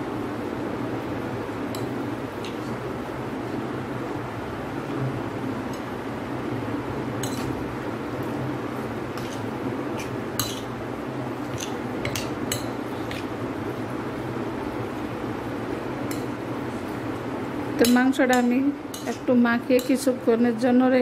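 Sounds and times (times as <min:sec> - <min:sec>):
steady background hum: 0:00.0 - 0:21.0
metal spoon clinking on plate: 0:07.2 - 0:07.6, 0:10.0 - 0:10.7.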